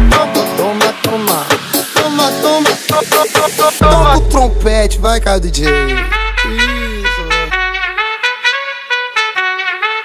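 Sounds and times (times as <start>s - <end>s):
trumpet riff in funk track: 0.0s - 10.0s.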